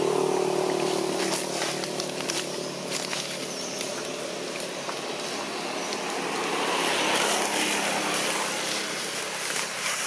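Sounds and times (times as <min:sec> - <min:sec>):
motor vehicle passing: 0:00.0 - 0:10.0.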